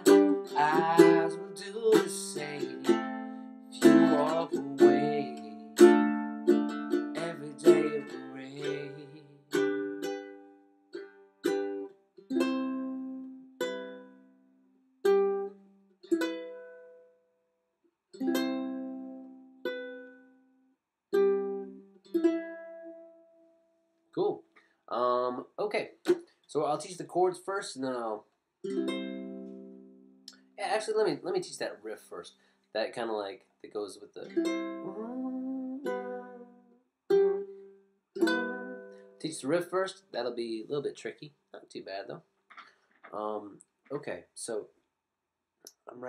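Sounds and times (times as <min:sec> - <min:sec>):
ukulele strumming and plucking: 0:00.0 - 0:17.0, 0:18.1 - 0:20.4, 0:21.1 - 0:23.4, 0:28.6 - 0:30.5, 0:34.2 - 0:40.8.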